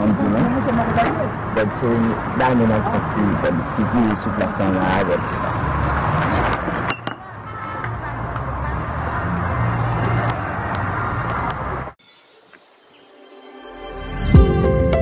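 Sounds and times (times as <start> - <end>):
voices: 0.0 - 11.9.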